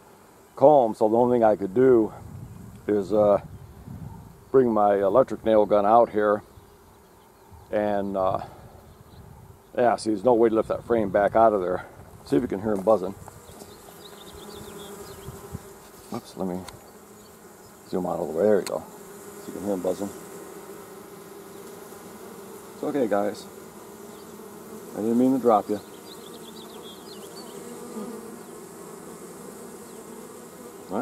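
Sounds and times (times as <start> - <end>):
honey bees buzzing: 0.0 - 31.0.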